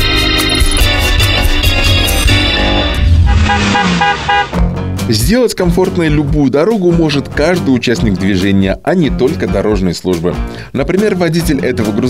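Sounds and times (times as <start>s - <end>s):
tv intro jingle music: 0.0s - 6.2s
car horn toots: 2.2s - 4.7s.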